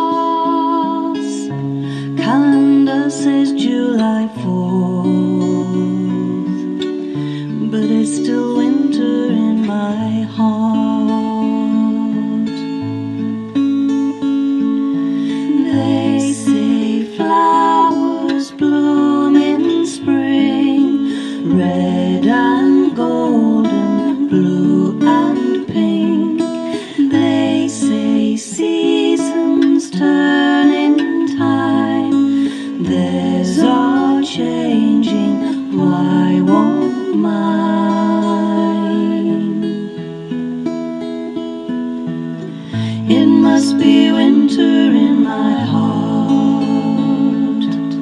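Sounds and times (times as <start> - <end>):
acoustic guitar chords: 0.0 - 48.0.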